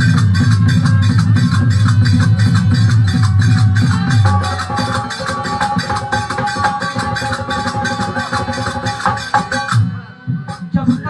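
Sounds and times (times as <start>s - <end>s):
hand drumming: 0.0s - 9.8s.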